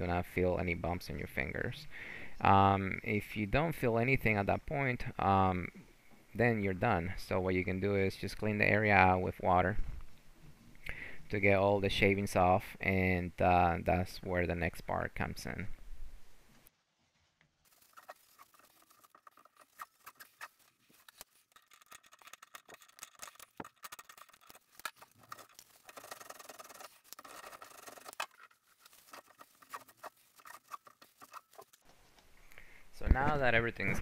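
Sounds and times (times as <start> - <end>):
paper towel scratching and rustling: 17.7 - 32.1.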